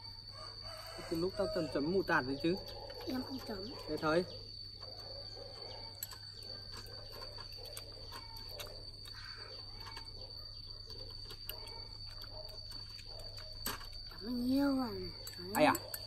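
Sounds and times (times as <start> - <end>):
fork clicking against shells: 15.2 - 16.0.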